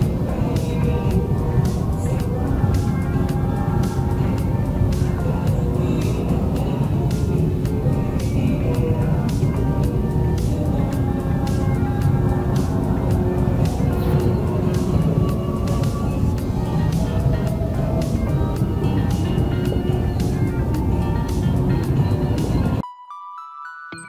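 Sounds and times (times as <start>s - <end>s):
background music with steady beat: 0.0s - 23.3s.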